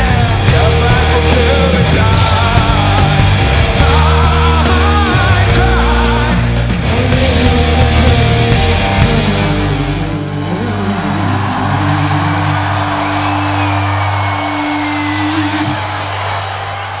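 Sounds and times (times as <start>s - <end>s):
electric guitar and bass chord ringing: 0.0s - 12.8s.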